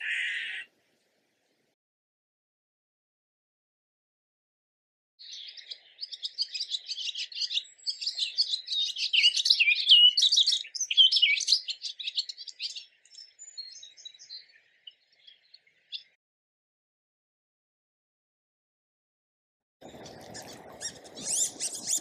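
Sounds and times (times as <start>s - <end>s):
swallow twittering: 0.0s - 0.7s, 5.2s - 16.2s, 19.8s - 22.0s.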